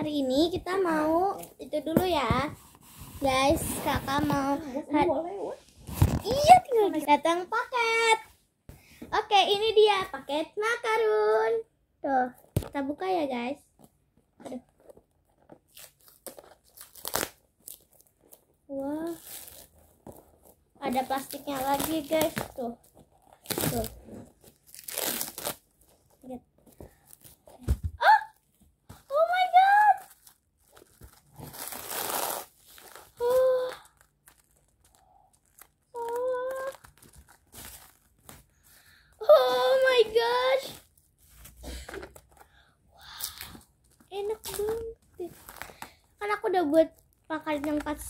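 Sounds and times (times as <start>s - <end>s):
plastic wrap crinkling and tearing: 15.3s - 27.6s, 28.3s - 38.7s, 39.3s - 42.4s, 43.1s - 48.0s
child exclaiming: 28.0s - 28.4s, 29.1s - 30.1s, 36.0s - 36.8s, 39.2s - 40.8s.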